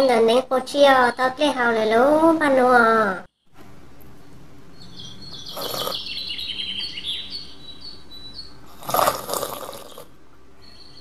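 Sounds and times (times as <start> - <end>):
birds chirping: 0.0 - 11.0
steady background hiss: 0.0 - 11.0.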